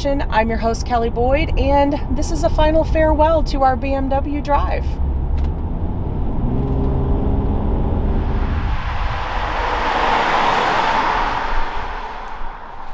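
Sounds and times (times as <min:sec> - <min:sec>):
car engine hum: 0:00.2 - 0:12.9
car passing by: 0:07.3 - 0:12.9.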